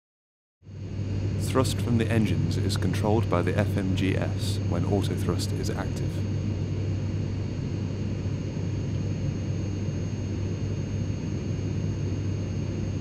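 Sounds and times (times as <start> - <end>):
jet engines droning: 0.7 - 13.0.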